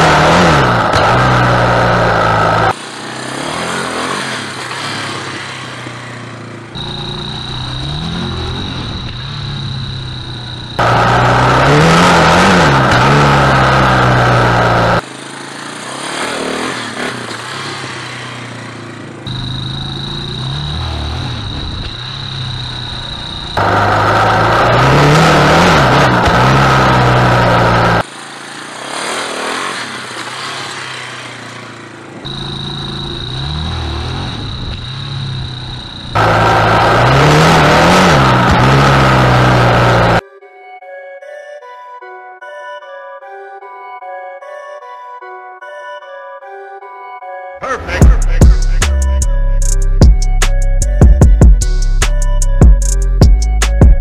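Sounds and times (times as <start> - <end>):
quad engine revving: 0.0 - 40.2, 47.6 - 53.2.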